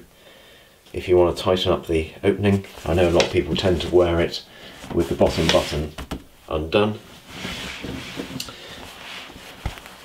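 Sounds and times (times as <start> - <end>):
denim fabric rustling: 2.5 - 6.2, 7.0 - 10.0.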